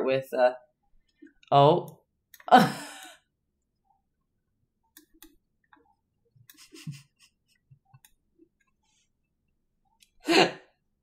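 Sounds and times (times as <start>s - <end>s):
woman laughing: 6.5s - 7.6s.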